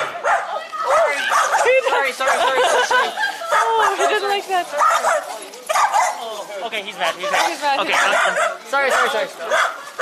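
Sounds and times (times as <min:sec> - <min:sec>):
small dog barking and yipping: 0:00.0 - 0:02.9, 0:03.5 - 0:06.3, 0:07.2 - 0:10.0.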